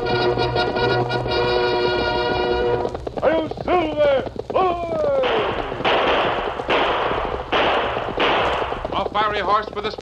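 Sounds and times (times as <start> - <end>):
gunshots: 5.1 - 9.3.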